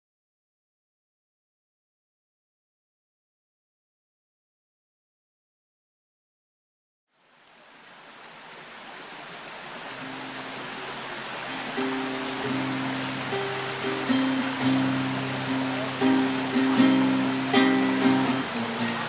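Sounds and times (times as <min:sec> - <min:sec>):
stream rushing: 0:07.1 - 0:19.0
classical guitar playing: 0:10.0 - 0:19.0.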